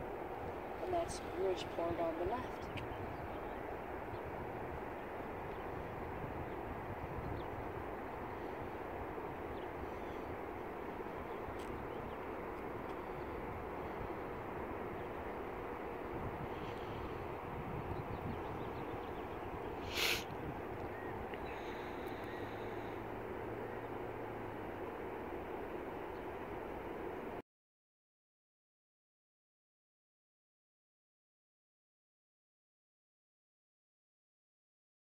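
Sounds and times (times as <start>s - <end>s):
car road and engine rumble: 0.2s - 27.4s.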